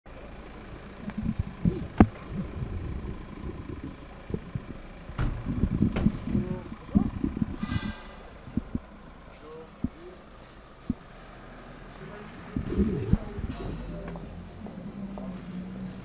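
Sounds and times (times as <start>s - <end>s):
car stopping on cobblestones: 0.1s - 16.0s
nearby voices: 11.9s - 16.0s.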